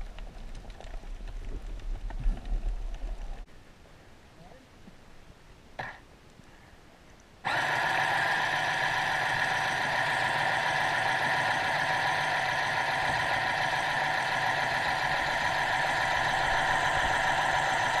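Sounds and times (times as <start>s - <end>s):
underwater scooter motor whine: 7.5s - 18.0s.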